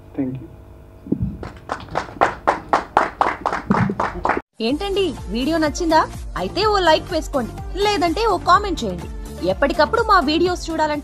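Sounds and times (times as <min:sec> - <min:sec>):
audience clapping: 0:01.2 - 0:04.4.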